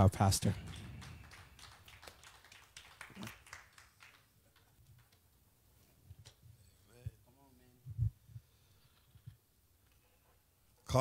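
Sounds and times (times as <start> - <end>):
congregation clapping: 0.0 - 5.4.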